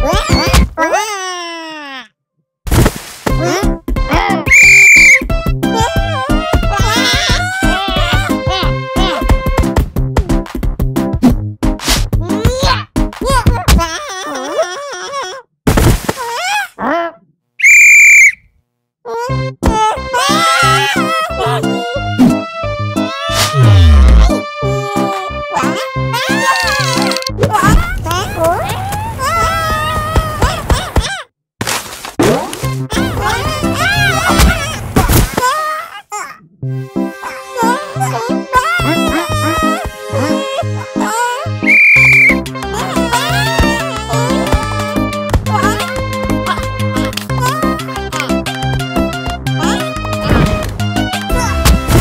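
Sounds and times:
bouncy cartoon music: 0:00.0 - 0:00.7, 0:03.3 - 0:14.7, 0:19.1 - 0:28.8, 0:32.2 - 0:34.8, 0:36.6 - 0:52.0
referee's whistle blast: 0:04.5 - 0:05.2, 0:17.6 - 0:18.4, 0:41.7 - 0:42.4.

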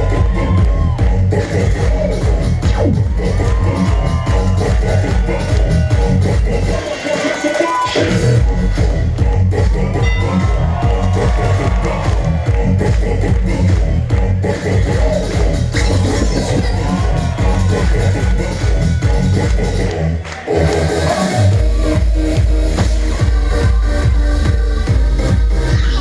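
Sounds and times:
electronic dance music: 0:00.0 - 0:26.0.

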